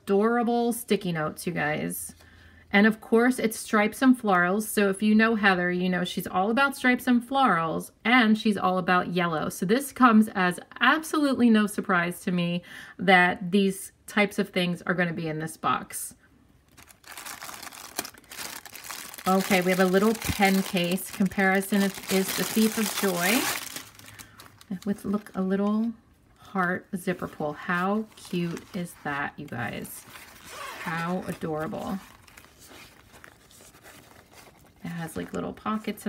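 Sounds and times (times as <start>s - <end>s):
woman speaking: 0.0s - 2.2s, 2.8s - 16.2s, 19.2s - 23.7s, 24.7s - 32.1s, 34.8s - 36.0s
fabric pen case rustling: 16.7s - 25.9s, 27.0s - 36.0s
plastic packaging crinkling: 16.7s - 25.9s, 27.2s - 36.0s.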